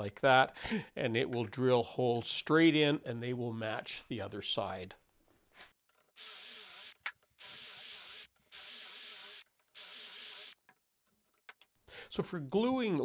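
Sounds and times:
cordless drill drilling wood: 0:06.2 - 0:10.6.

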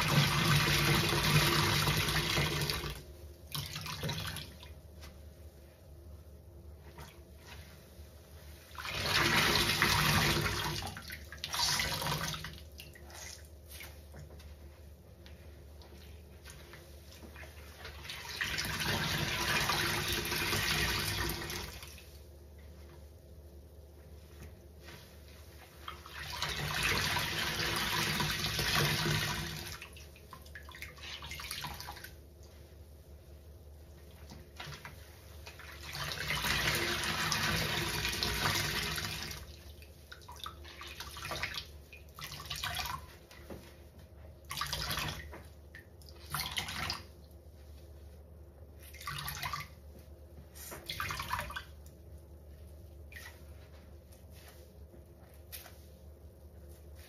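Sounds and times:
soapy water squelching from sponges: 0:33.8 - 0:57.0.

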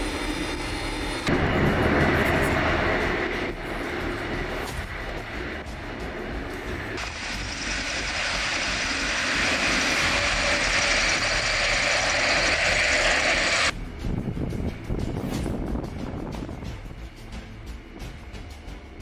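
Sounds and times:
turboprop aircraft engines running: 0:00.0 - 0:19.0.

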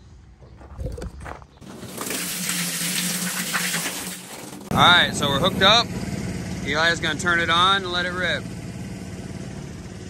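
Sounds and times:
water pouring into steel tank: 0:01.6 - 0:04.7.

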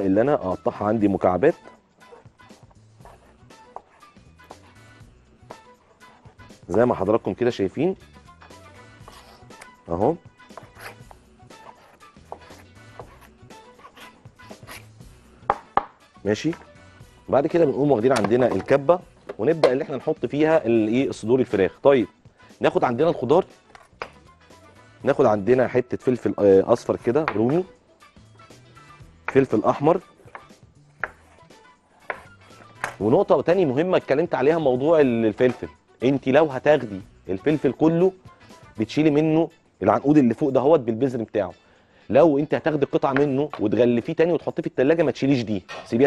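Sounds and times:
quiet background music: 0:00.0 - 0:46.0
knife cutting on cutting board: 0:10.5 - 0:14.9, 0:30.2 - 0:33.0
knife knocking on cutting board: 0:15.4 - 0:16.0.

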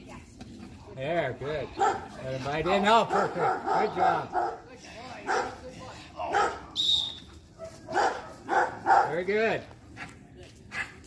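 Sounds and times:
dog barking: 0:01.8 - 0:02.1, 0:03.0 - 0:04.6, 0:05.3 - 0:05.6, 0:06.3 - 0:06.7, 0:07.6 - 0:09.2.

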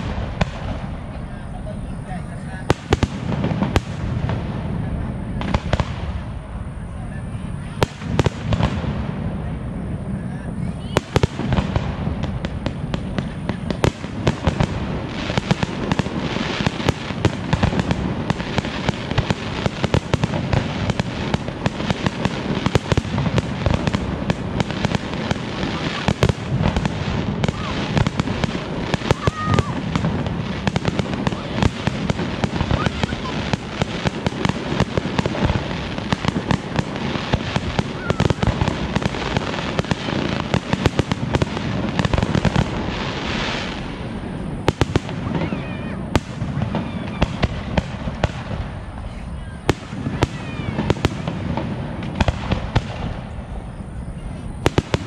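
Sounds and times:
fireworks bursting with crackle: 0:00.0 - 0:55.0.

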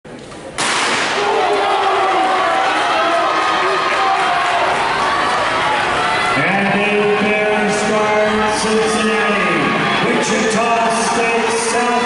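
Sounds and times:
crowd cheering and shouting: 0:01.1 - 0:12.0.

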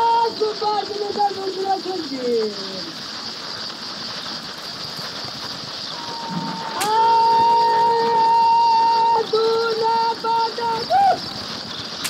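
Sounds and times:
noisy rustling: 0:00.0 - 0:12.0.

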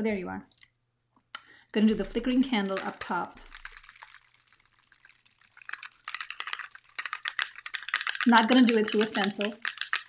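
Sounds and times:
spray bottle rattling when shaken: 0:01.8 - 0:10.0.

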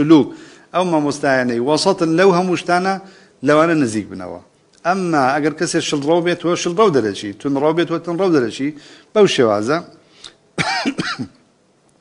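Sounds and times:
man clearing his throat: 0:10.6 - 0:11.4.

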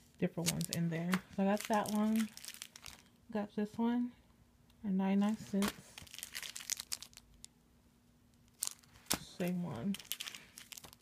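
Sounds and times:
plastic packaging crinkling: 0:00.0 - 0:03.2, 0:05.4 - 0:07.5, 0:08.4 - 0:11.0.

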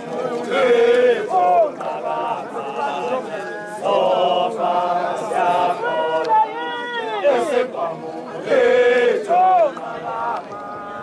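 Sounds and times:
group of voices chanting: 0:00.0 - 0:11.0.

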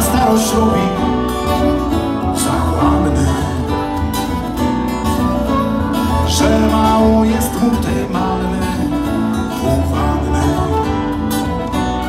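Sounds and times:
acoustic guitars: 0:00.0 - 0:12.0
bass guitar: 0:00.0 - 0:12.0
fiddle: 0:00.0 - 0:12.0.

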